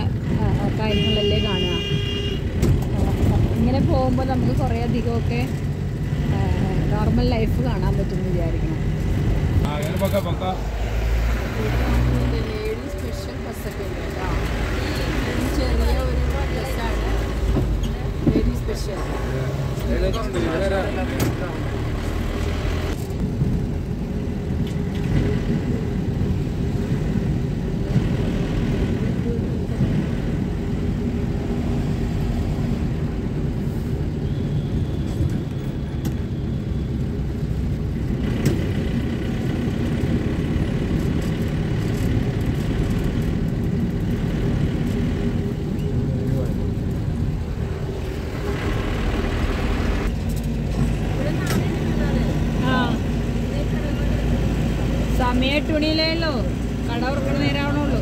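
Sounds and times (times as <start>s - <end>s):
vehicle engine and road rumble: 0.0s - 58.0s.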